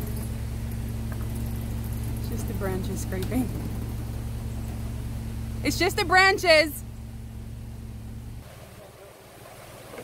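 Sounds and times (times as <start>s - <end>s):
outdoor noise: 0.0s - 10.0s
vehicle engine idling: 0.0s - 10.0s.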